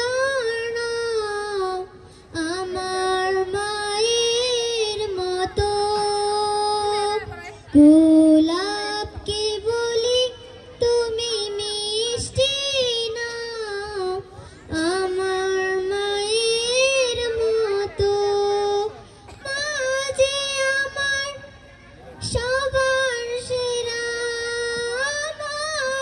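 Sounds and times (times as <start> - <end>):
girl singing: 0.0 - 21.4, 22.2 - 26.0.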